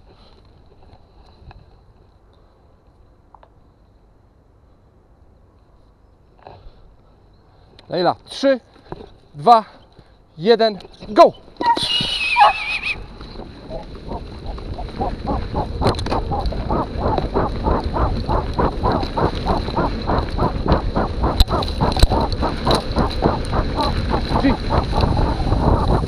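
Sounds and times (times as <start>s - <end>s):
short high wavering cry: 11.6s - 13.0s
bike tyre and wind rumble: 12.4s - 26.0s
rhythmic hard breathing: 13.6s - 26.0s.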